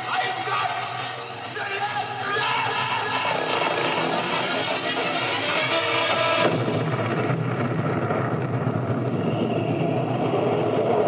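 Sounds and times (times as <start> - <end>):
cartoon explosion roar: 2.4 - 11.0.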